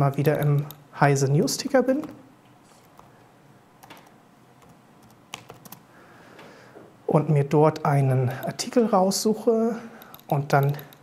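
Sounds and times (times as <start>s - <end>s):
laptop keyboard keystrokes: 0.3s - 0.8s, 3.8s - 5.8s, 10.0s - 11.0s.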